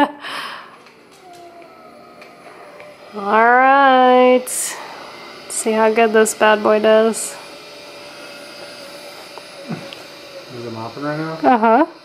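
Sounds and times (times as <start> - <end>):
woman laughing: 0.0 - 0.6, 11.4 - 12.0
faint wavering tones: 0.5 - 12.0.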